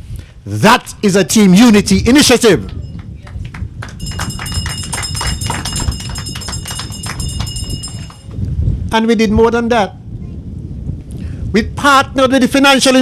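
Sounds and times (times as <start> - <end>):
audience hand clapping: 3.0 - 8.4
high ringing tone: 4.0 - 8.4.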